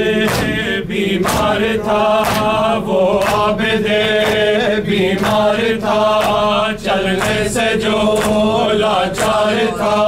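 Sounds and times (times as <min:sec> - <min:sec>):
hands striking chest beat: 0:00.0 - 0:10.0
men chanting in unison: 0:00.0 - 0:10.0.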